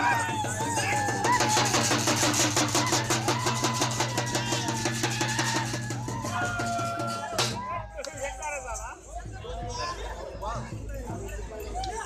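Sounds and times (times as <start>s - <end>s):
drums playing fast beat: 0.0s - 8.0s.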